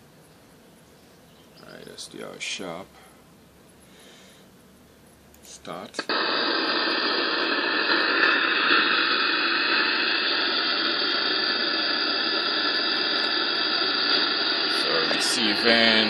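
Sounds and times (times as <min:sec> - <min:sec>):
radio static hiss: 0:01.6 - 0:03.0, 0:05.4 - 0:16.0.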